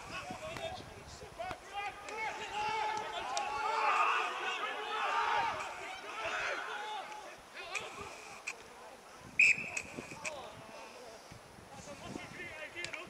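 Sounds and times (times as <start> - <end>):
men shouting: 1.5 - 8.2.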